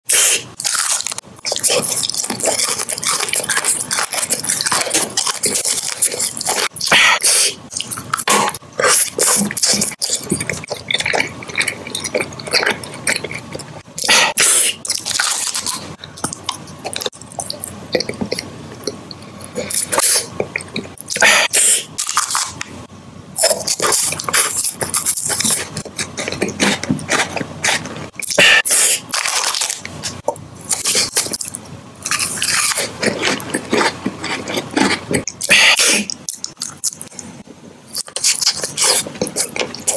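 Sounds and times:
wet mouth sounds: 0.1 - 22.6, 23.4 - 29.1, 30.0 - 39.9
candy crunching and chewing: 0.1 - 22.7, 23.4 - 39.9.

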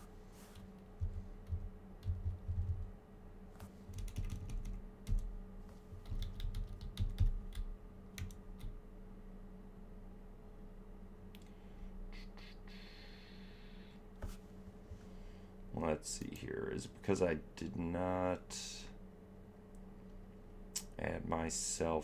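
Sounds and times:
faint steady hum: 0.0 - 22.0
typing on computer keyboard: 3.9 - 5.3, 6.0 - 8.7.

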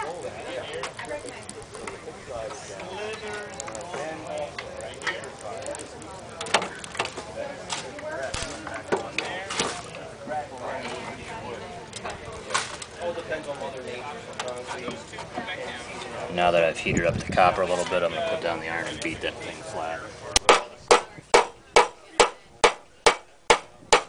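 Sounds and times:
background voices talking: 0.0 - 24.0.

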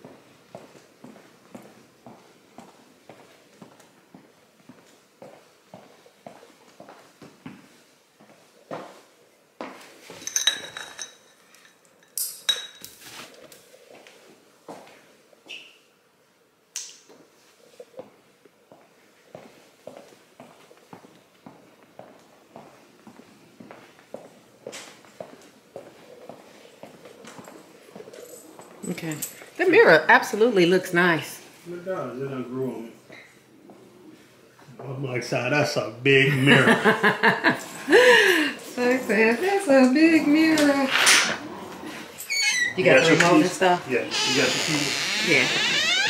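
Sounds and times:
woman talking: 28.8 - 31.5, 38.4 - 41.0, 42.7 - 43.9, 44.6 - 45.8.

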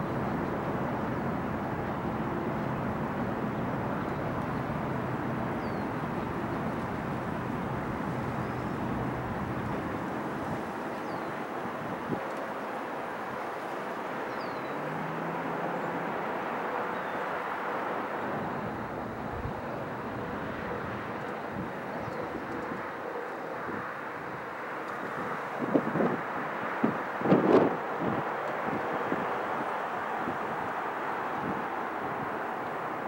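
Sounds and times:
distant engines and traffic: 0.0 - 33.0.

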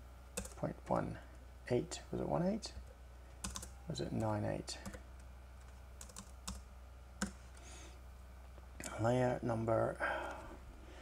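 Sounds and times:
keyboard keys tapping: 0.4 - 0.6, 3.4 - 5.0, 5.6 - 6.6.

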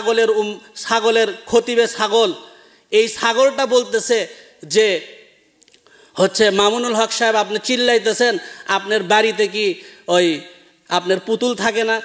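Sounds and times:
man preaching: 0.0 - 5.4, 6.1 - 12.0.

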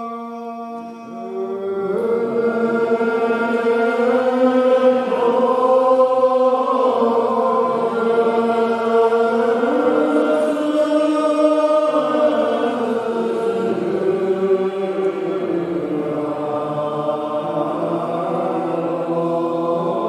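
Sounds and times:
congregation singing unaccompanied: 0.0 - 20.0.

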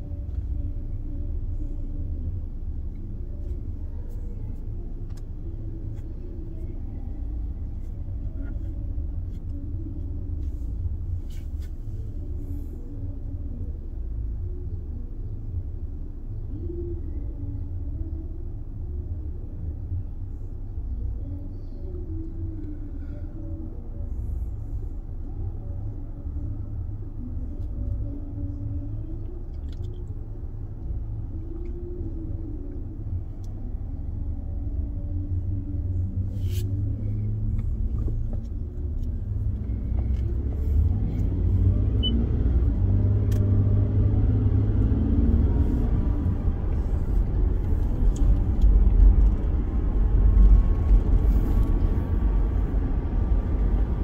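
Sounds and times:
car engine rumble inside cabin: 0.0 - 54.0.

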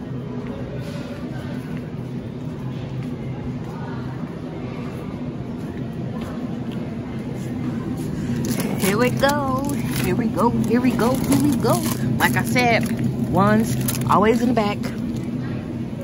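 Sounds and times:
faint store noise: 0.0 - 16.0
refrigerator electrical hum: 0.0 - 16.0
person speaking: 8.5 - 14.9.

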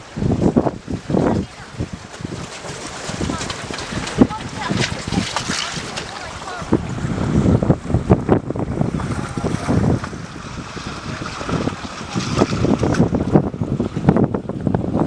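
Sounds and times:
waves washing against rocks: 0.0 - 15.0
wind buffeting microphone: 0.0 - 15.0.

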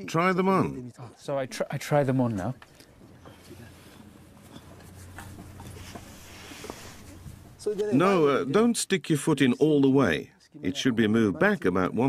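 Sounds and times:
fabric rustling: 2.8 - 8.2
man's voice: 7.6 - 12.0.

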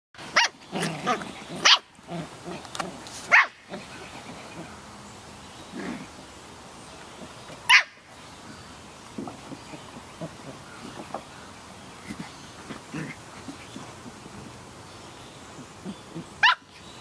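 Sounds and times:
puppies barking: 0.2 - 4.8, 7.7 - 8.1, 15.6 - 16.8.

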